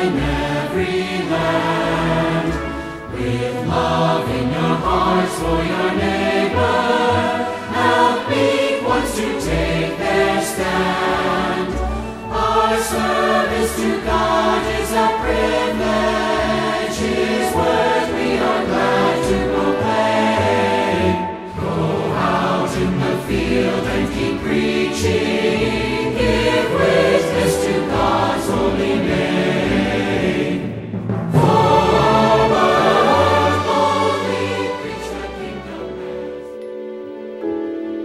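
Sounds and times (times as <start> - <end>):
choir singing: 0.0 - 38.0
instrumental music: 0.0 - 38.0.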